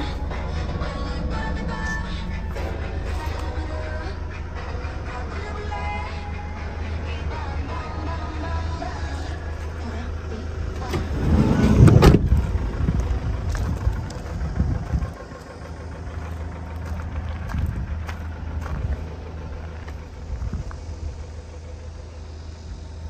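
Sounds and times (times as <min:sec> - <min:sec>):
van engine idling: 0:00.0 - 0:23.0.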